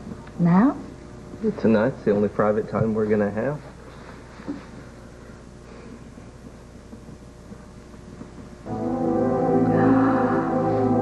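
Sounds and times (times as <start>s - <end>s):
sustained music chord: 8.7s - 11.0s.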